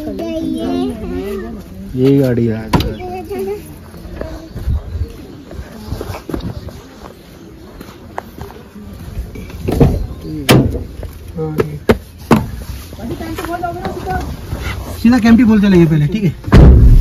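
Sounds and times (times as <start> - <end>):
faint background voices: 0.0 - 15.2.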